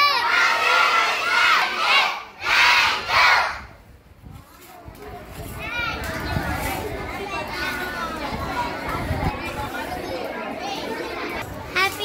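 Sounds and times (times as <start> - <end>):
children chattering: 4.4 - 12.0.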